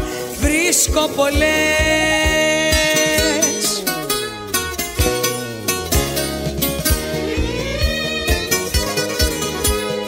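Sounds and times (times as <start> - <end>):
drum and bass beat: 0.0 - 10.0
plucked string instruments melody: 0.0 - 10.0.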